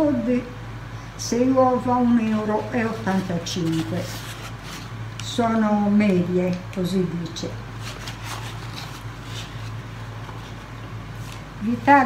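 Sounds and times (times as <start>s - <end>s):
steady low hum: 0.0s - 12.0s
grocery packaging rustling: 7.8s - 11.5s.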